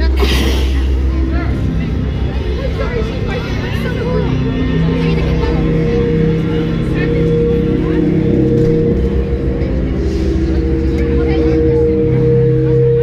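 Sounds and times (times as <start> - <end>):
crowd voices: 0.0 - 13.0
deep rumble: 0.0 - 13.0
low drone notes: 0.0 - 13.0.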